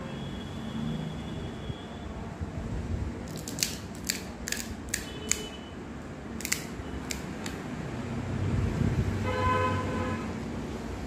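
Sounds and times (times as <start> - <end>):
crisp shells cracking: 3.3 - 5.4.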